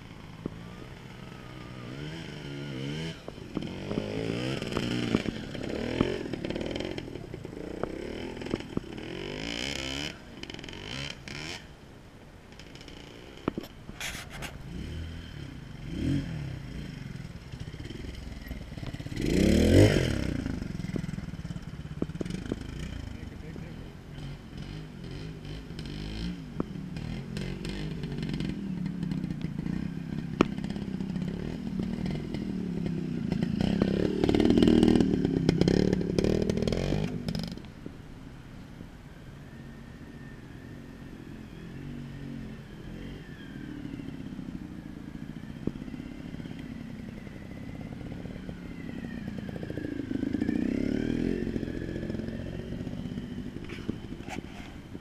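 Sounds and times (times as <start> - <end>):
motorcycle engine revving: 0.0 - 11.8, 12.5 - 37.7, 39.4 - 55.0.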